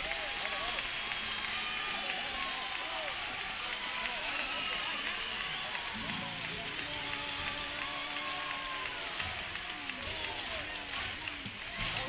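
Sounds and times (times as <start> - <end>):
audience applause: 0.0 - 12.0.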